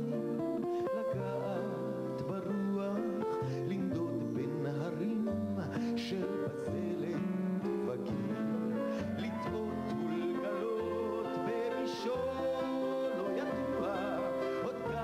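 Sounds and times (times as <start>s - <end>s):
band accompaniment with bass: 0.0s - 15.0s
man singing: 0.0s - 15.0s.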